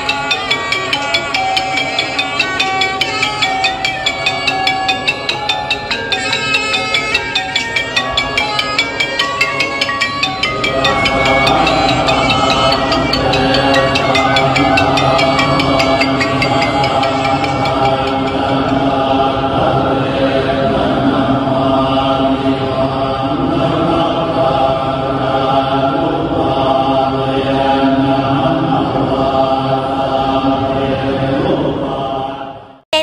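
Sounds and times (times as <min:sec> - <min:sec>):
monks chanting in unison: 0:10.4 - 0:32.8.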